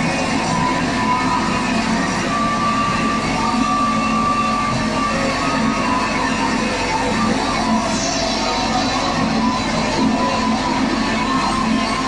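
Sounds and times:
distorted guitar noise: 0.0s - 12.0s.

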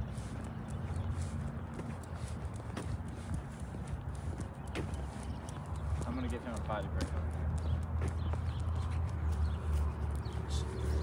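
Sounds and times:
footsteps on asphalt: 0.0s - 11.0s.

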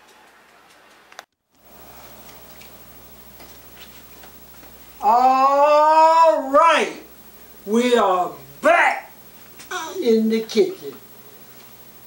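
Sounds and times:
low steady hum: 1.6s - 12.0s.

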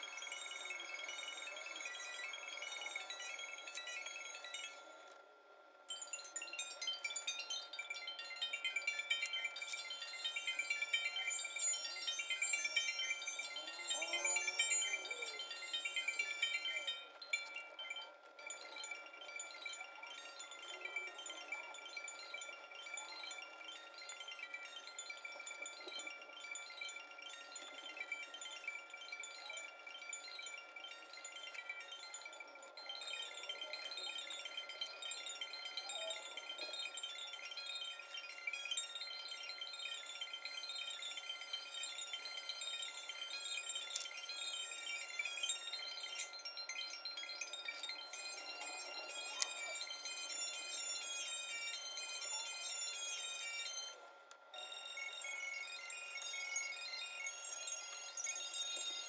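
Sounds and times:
quiet music of short high notes: 0.0s - 59.0s
wind chimes tinkling: 0.0s - 59.0s.

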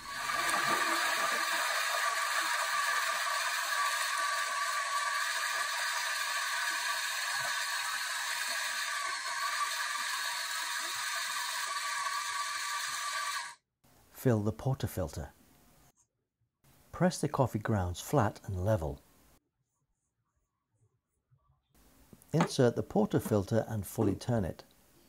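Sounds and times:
coffee grinder whirring: 0.0s - 13.5s.

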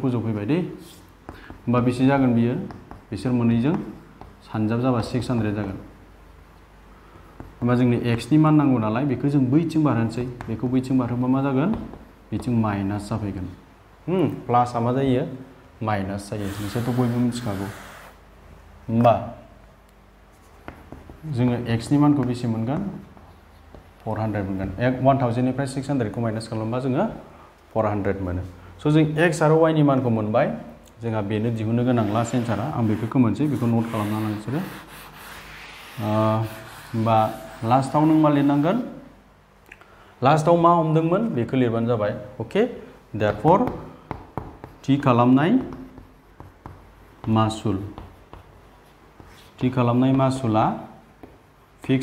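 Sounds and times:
chalk writing on blackboard: 0.8s - 1.6s, 2.6s - 4.4s, 16.4s - 18.2s, 20.3s - 21.3s, 23.0s - 24.0s, 31.8s - 39.0s, 43.6s - 50.4s
person speaking: 7.4s - 18.2s, 21.0s - 39.2s, 40.2s - 48.4s
man speaking: 7.6s - 18.0s.

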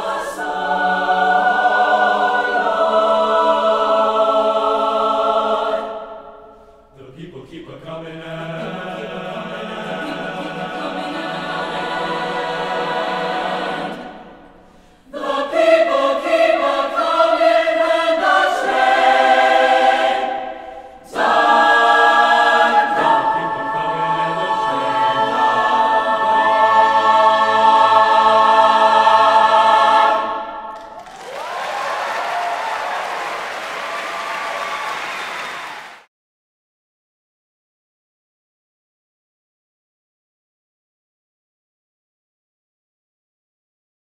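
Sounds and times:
choir singing: 0.0s - 36.0s
audience applause: 30.7s - 36.1s.

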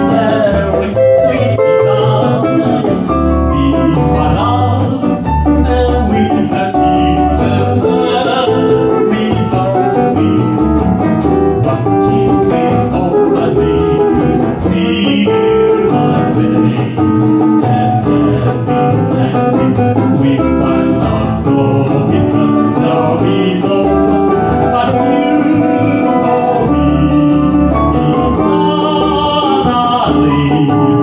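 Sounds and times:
acoustic guitar: 0.0s - 31.0s
piano: 0.0s - 31.0s
upright double bass: 0.0s - 31.0s.

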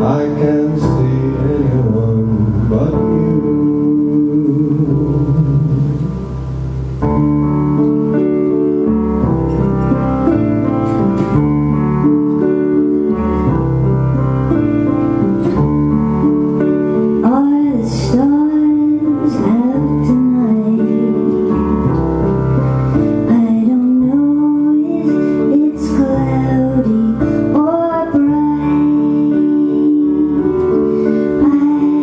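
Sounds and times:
person singing: 0.0s - 6.6s, 17.0s - 21.9s, 23.1s - 32.0s
acoustic guitar: 0.0s - 32.0s
piano slow chords: 0.0s - 32.0s.

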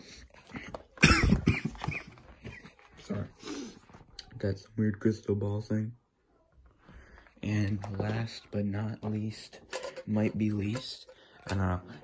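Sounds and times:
person coughing: 1.0s - 2.6s.

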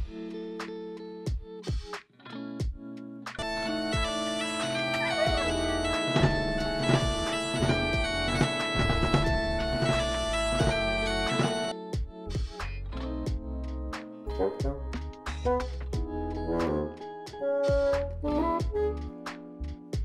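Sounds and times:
bagpipes playing: 3.4s - 11.7s
short separate notes: 3.4s - 11.7s, 16.4s - 18.1s.

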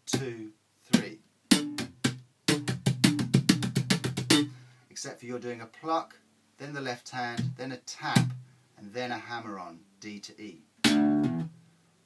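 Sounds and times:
slap bass guitar: 1.0s - 4.5s, 10.8s - 11.6s.

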